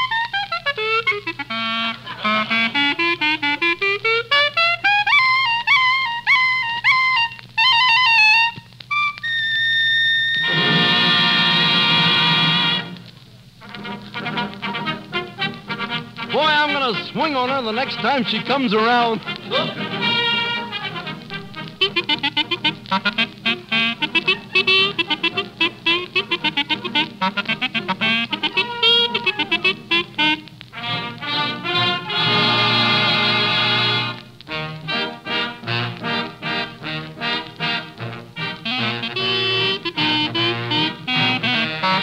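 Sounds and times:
band playing fast brass passage: 0:01.2 - 0:04.7, 0:09.6 - 0:13.0, 0:13.6 - 0:42.0.

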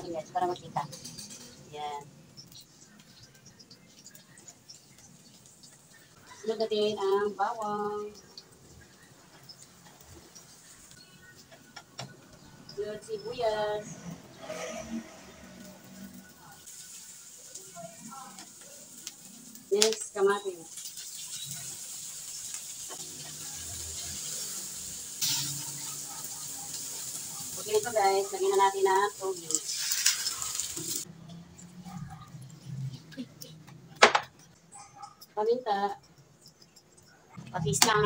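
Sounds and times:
garlic sizzling in a pan: 0:00.0 - 0:31.1.

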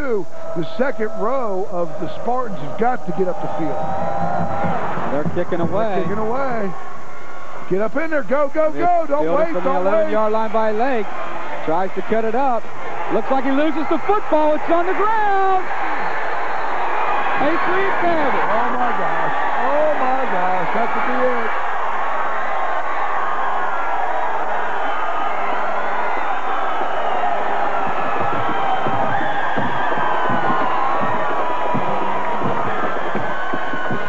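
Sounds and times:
crowd cheering and yelling: 0:00.0 - 0:34.0
loud shouts: 0:12.9 - 0:34.0.

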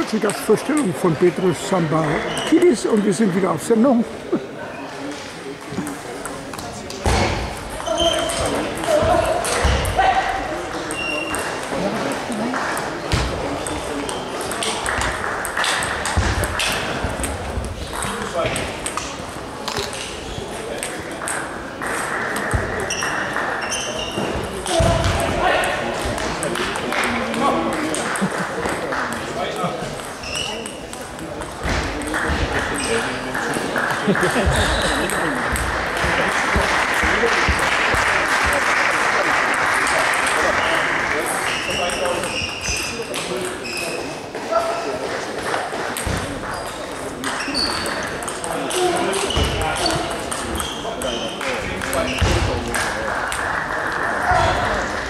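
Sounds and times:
voices echoing in a hall: 0:00.0 - 0:55.0.

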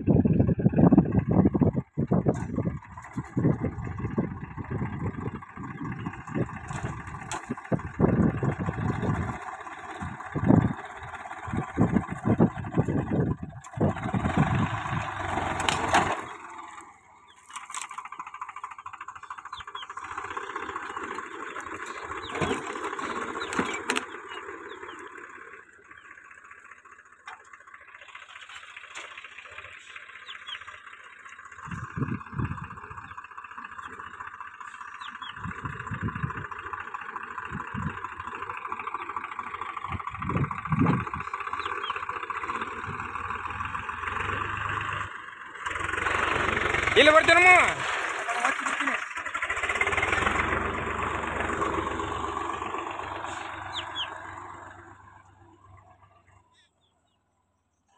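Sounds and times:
wind buffeting microphone: 0:00.0 - 0:15.5, 0:31.6 - 0:33.2, 0:35.2 - 0:36.7, 0:37.4 - 0:38.2, 0:39.8 - 0:41.4
diesel tractor engine under load: 0:00.0 - 0:57.9.

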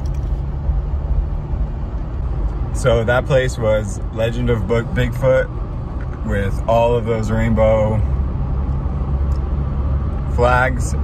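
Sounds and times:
road noise rumble inside car: 0:00.0 - 0:11.0.

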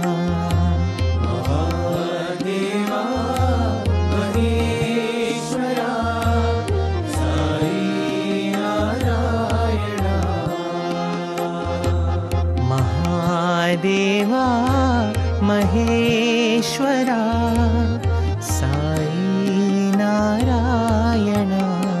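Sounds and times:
devotional song singing: 0:00.0 - 0:22.0.

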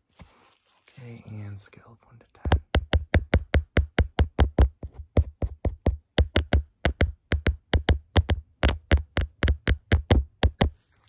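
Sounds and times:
hand tapping on microphone: 0:02.4 - 0:10.7.

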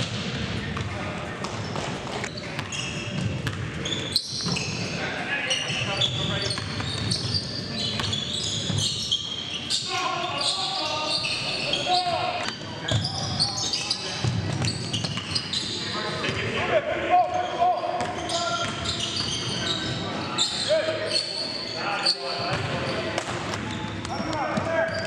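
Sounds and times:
sneakers squeaking: 0:00.0 - 0:16.6, 0:17.2 - 0:25.0
players' voices: 0:00.2 - 0:25.0
basketball bouncing on hardwood: 0:02.6 - 0:03.7.

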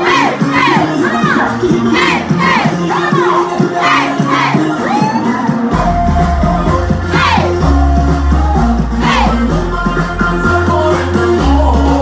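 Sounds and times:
chanted shouts: 0:00.0 - 0:05.7, 0:07.0 - 0:07.6, 0:08.9 - 0:09.5
dance music with bass: 0:00.0 - 0:12.0.

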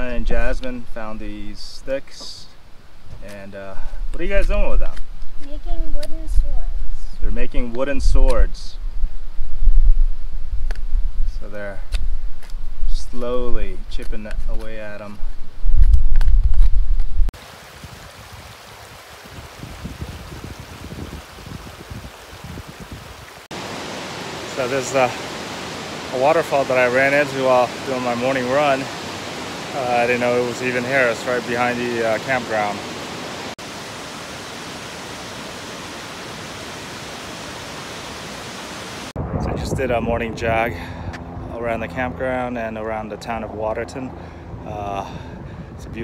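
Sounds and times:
creek flowing over stones: 0:17.4 - 0:39.1
waterfall roaring: 0:23.1 - 0:39.1
loud low rumble: 0:39.2 - 0:44.8.

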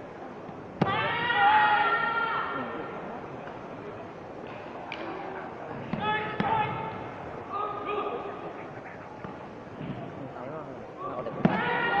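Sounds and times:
murmur of background voices: 0:00.0 - 0:12.0.

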